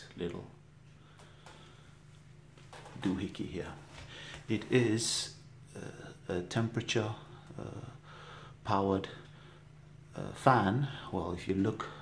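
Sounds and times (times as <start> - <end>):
faint fan hum: 0.0 - 12.0.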